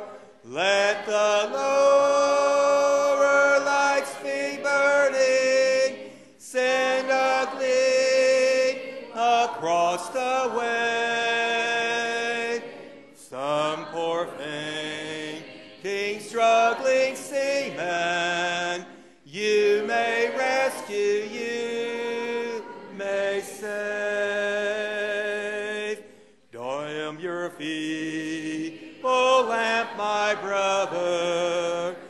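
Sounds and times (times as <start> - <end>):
congregation singing a hymn: 0.0 - 32.0.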